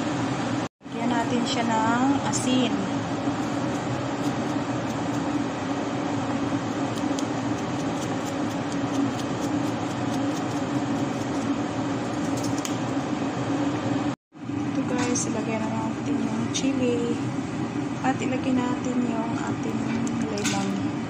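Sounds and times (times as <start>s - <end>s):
kitchen machine hum: 0.0s - 21.0s.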